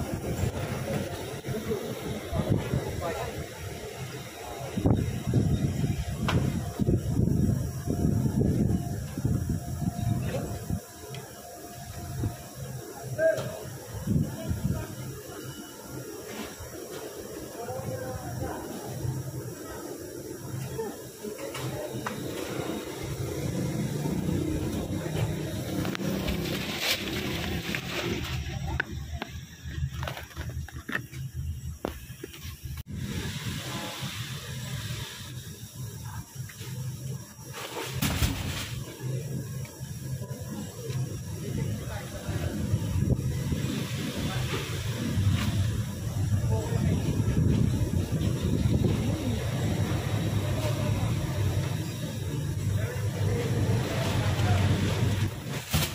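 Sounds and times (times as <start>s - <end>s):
indistinct voices: 0.0s - 32.1s, 38.8s - 55.9s
loud thump: 38.0s - 38.8s.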